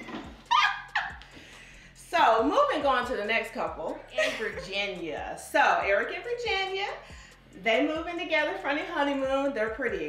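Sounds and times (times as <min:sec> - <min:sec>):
woman laughing hard: 0:00.0 - 0:01.3, 0:04.2 - 0:04.6.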